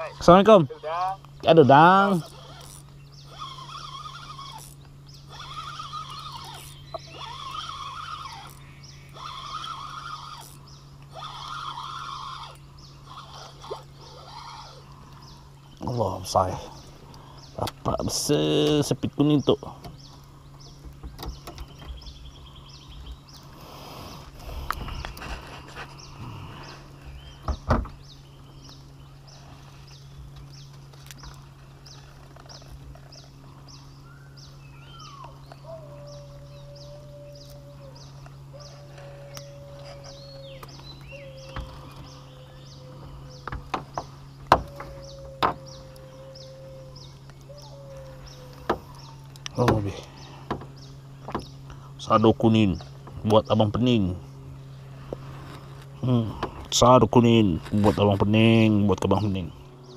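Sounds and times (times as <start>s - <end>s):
insects pulsing: 0.0s - 59.9s
steady low hum: 0.0s - 59.9s
clicks and knocks on boat: 19.7s - 22.2s, 43.0s - 45.7s, 48.6s - 51.6s.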